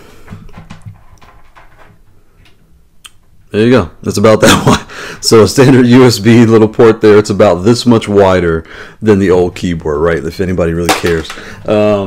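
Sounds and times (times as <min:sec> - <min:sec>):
soft rustling of cable: 0:00.0 - 0:03.5.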